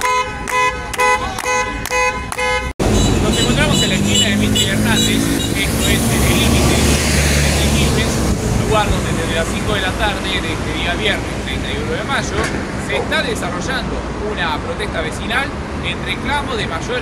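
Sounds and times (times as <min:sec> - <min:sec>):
car horns honking: 0:00.0 - 0:08.0
heavy vehicle engine rumbling: 0:00.0 - 0:17.0
street traffic: 0:00.0 - 0:17.0
background voices: 0:03.2 - 0:15.2.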